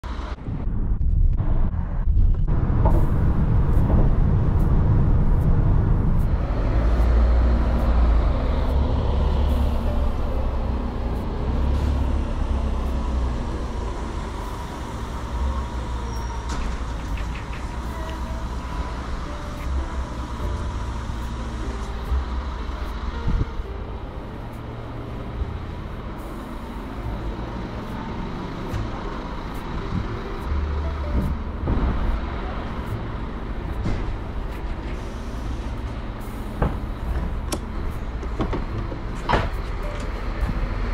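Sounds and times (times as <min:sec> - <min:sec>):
passing traffic: 0:00.0 - 0:40.9
road and wind noise in van: 0:00.0 - 0:40.9.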